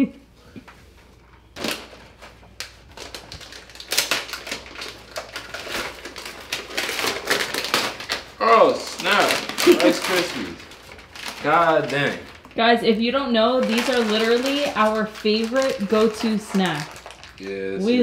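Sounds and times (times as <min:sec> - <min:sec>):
plastic packaging crinkling: 0:01.4 - 0:17.9.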